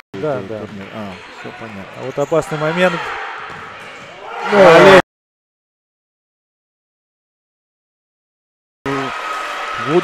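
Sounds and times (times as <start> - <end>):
loud excited shout: 4.2 - 5.0.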